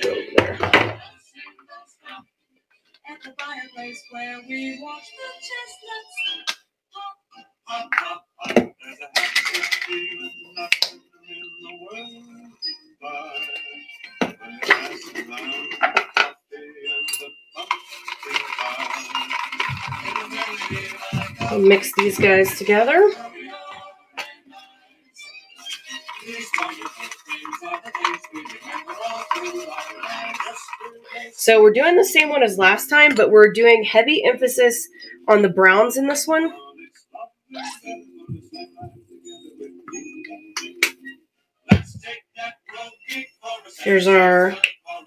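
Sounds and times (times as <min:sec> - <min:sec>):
background music: 0:00.0 - 0:45.0
stick scraping and tapping cup: 0:09.2 - 0:09.9, 0:14.2 - 0:16.3, 0:17.6 - 0:23.2, 0:25.6 - 0:31.3
plastic bottles clicking: 0:17.6 - 0:22.7, 0:25.7 - 0:31.0.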